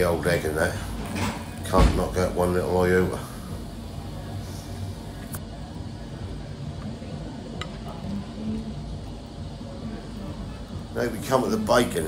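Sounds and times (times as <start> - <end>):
cafe dining room hum: 0.0 - 12.0.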